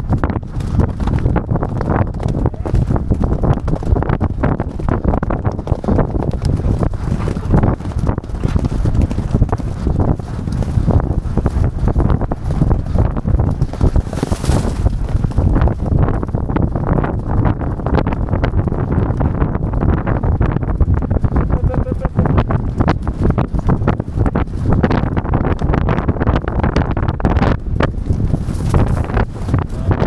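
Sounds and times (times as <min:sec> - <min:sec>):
hooves thudding on turf: 0:00.0 - 0:30.0
wind buffeting microphone: 0:00.0 - 0:30.0.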